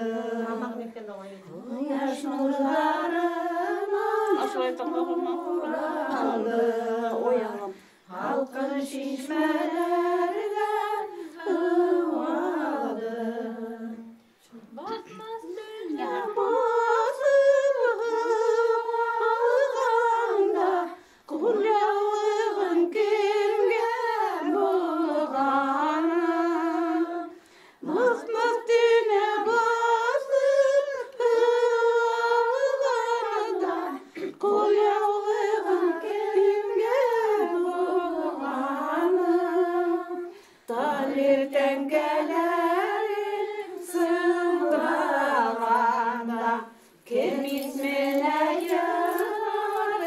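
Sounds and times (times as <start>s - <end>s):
women singing unaccompanied: 0.0s - 50.0s.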